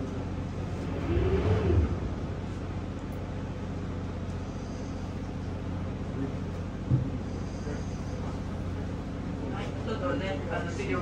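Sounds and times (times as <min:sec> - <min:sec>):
boat engine low hum: 0:00.0 - 0:11.0.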